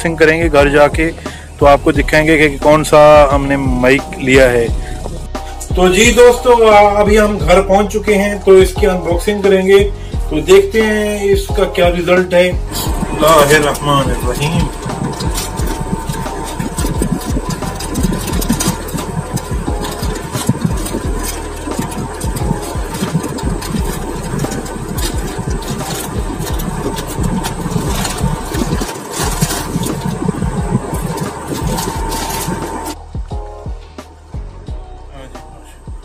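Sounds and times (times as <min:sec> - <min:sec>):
low handling rumble: 0:00.0 - 0:36.0
plastic bag tearing and crinkling: 0:12.8 - 0:33.0.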